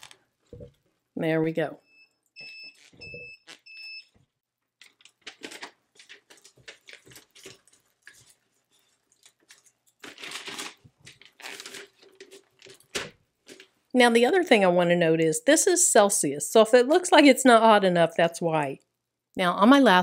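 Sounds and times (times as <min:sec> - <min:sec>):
short electronic beeps: 0:01.8 - 0:04.1
paper crinkling and rustling: 0:04.8 - 0:13.8.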